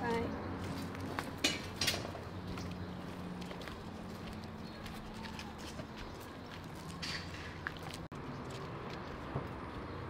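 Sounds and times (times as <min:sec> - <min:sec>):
footsteps on dirt path: 0:00.5 - 0:10.0.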